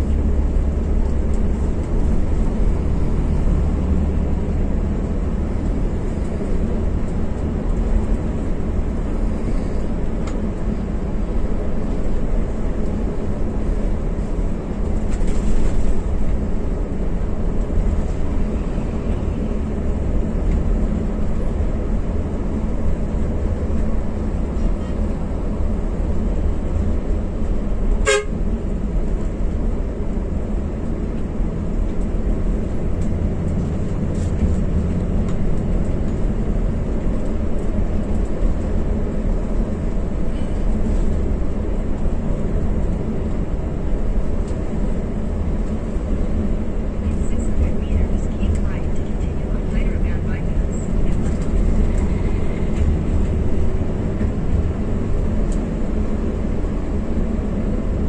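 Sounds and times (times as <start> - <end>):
coach engine and tyres droning: 0.0 - 58.0
brief horn toot: 28.0 - 28.4.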